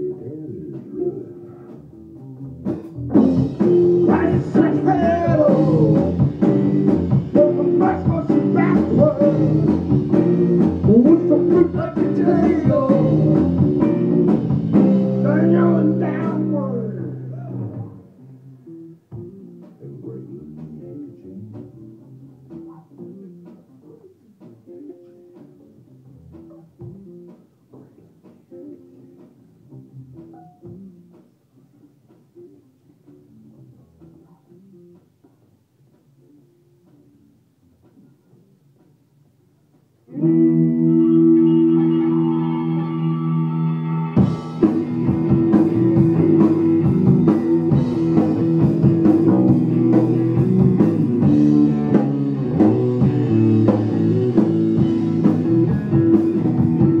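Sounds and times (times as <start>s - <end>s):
electric bass: 0.0s - 28.0s, 40.1s - 57.0s
electric guitar: 0.0s - 39.0s, 40.0s - 57.0s
live rock band: 0.0s - 39.0s, 40.0s - 57.0s
drum kit: 0.0s - 57.0s
person singing: 4.0s - 6.3s, 7.3s - 9.9s, 10.7s - 13.6s, 15.1s - 17.7s, 40.2s - 44.7s.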